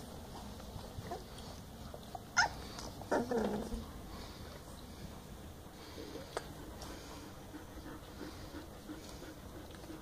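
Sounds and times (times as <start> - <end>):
puppy squeaking: 2.4 - 3.5.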